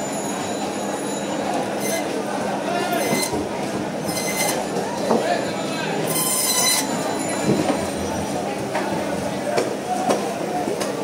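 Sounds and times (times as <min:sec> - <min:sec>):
saw blade squealing: 0:00.3 - 0:02.1, 0:02.9 - 0:03.4, 0:04.0 - 0:04.6, 0:06.0 - 0:07.5.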